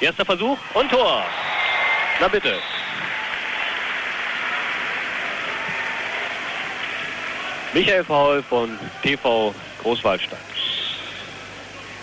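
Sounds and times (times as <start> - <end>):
crowd applauding and cheering: 0.6 - 9.2.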